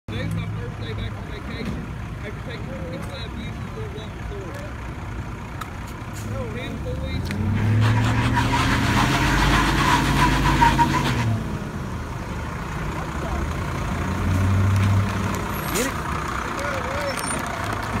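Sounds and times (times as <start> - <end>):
heavy truck engines revving: 0.1 - 18.0.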